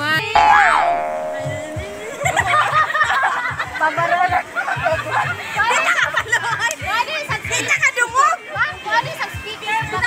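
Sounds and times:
women laughing: 2.2 - 6.6.

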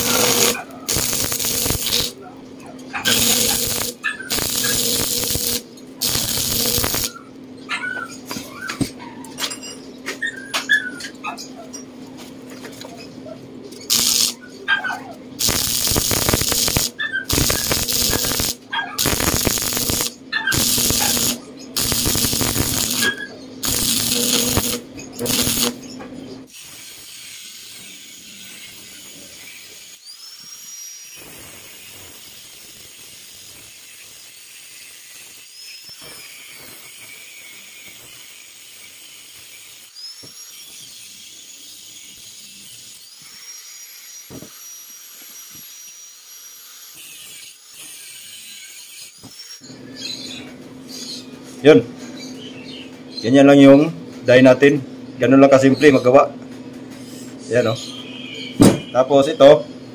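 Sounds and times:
angle grinder whining on steel: 0.0 - 2.2, 2.8 - 7.2, 13.9 - 14.4, 15.4 - 25.9
stick welding crackling: 0.0 - 2.3, 2.9 - 7.2, 13.8 - 14.4, 15.4 - 30.0, 31.1 - 46.1.

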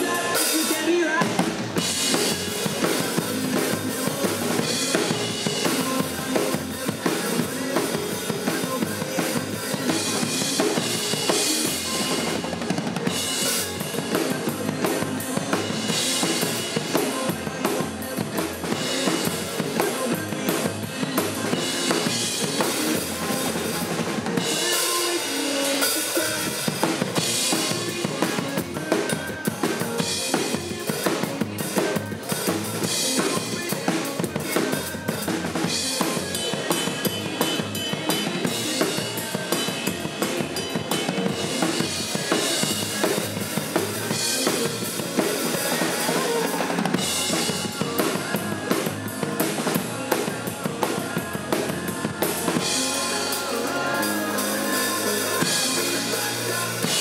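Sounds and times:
acoustic drum kit playing: 0.0 - 57.0
backing track music: 0.0 - 57.0.

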